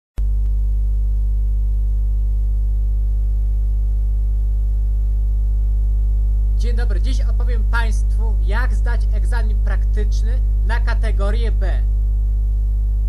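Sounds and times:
steady low hum: 0:00.2 - 0:13.0.

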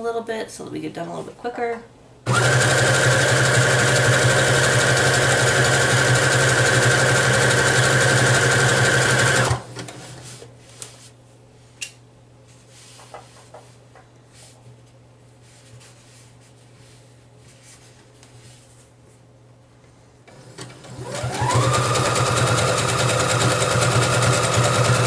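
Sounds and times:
sewing machine running fast: 0:02.3 - 0:09.7, 0:20.6 - 0:25.0.

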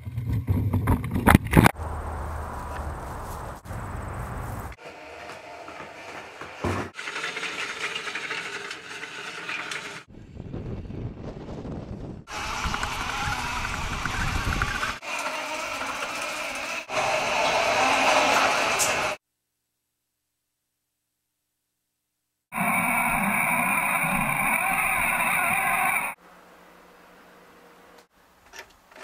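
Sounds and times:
robot electric motors and tracks: 0:04.5 - 0:10.1, 0:12.3 - 0:19.2, 0:22.6 - 0:26.2.

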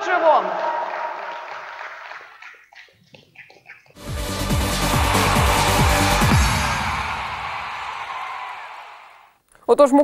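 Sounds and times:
crowd applause: 0:00.0 - 0:02.6, 0:04.0 - 0:09.4
music jingle with a beat: 0:04.0 - 0:07.8.

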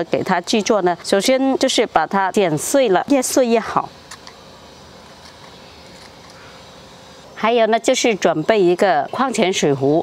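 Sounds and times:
background hiss and hum: 0:00.0 - 0:10.0.

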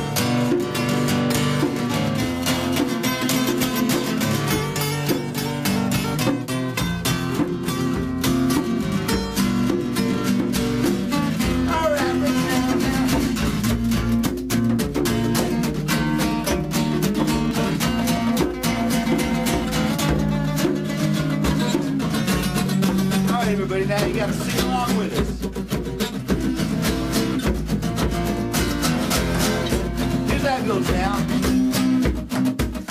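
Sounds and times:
acoustic guitars strumming: 0:00.0 - 0:32.9
djembe hand drum: 0:00.0 - 0:32.9.

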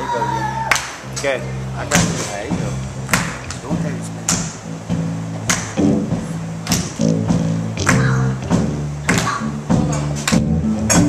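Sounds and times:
keyboard sustained low chords: 0:00.0 - 0:11.0.

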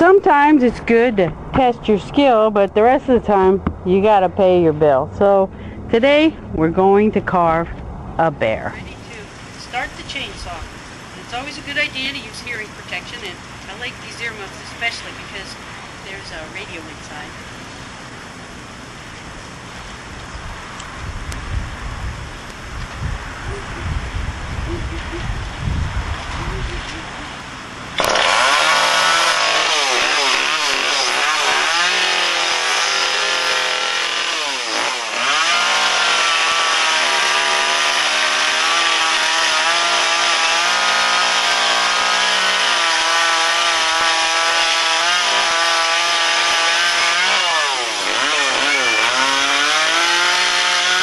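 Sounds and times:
wind buffeting microphone: 0:20.3 - 0:27.5
chainsaw cutting wood: 0:28.0 - 0:51.0.

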